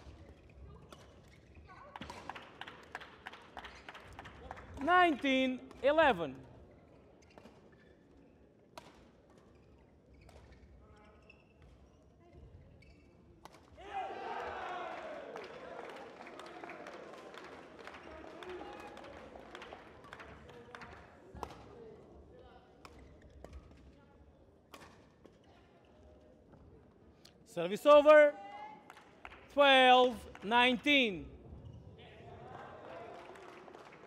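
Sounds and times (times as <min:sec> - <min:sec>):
voices in a hall: 0:00.0 - 0:34.0.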